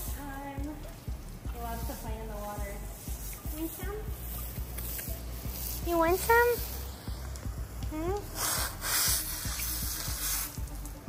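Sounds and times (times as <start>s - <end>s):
hose nozzle spraying water: 0.0s - 11.0s.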